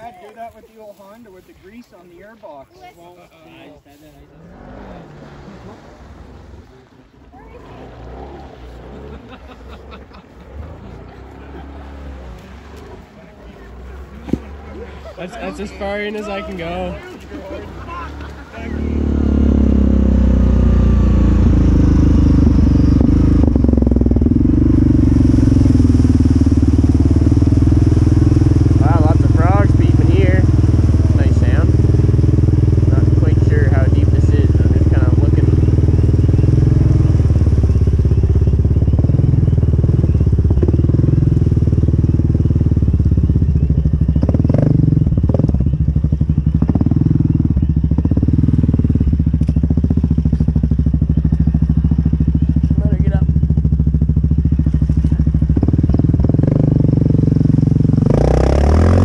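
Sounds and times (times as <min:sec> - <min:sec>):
water pushed aside by wheels: 0:04.2 - 0:19.5
quad engine running under load: 0:07.4 - 0:59.0.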